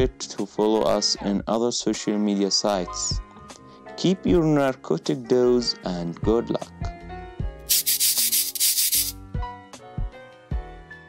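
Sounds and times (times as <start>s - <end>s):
scratchy rubbing sound effect: 7.7s - 9.2s.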